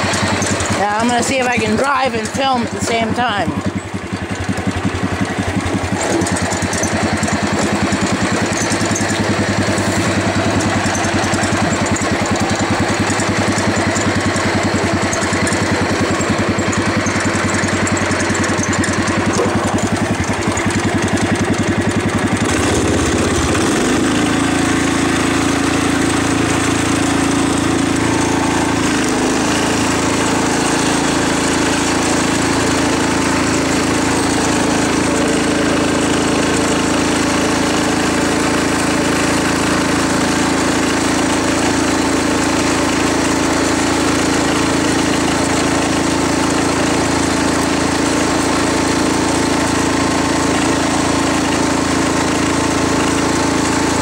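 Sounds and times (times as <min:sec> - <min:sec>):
garden tractor engine running: 0:00.0 - 0:54.0.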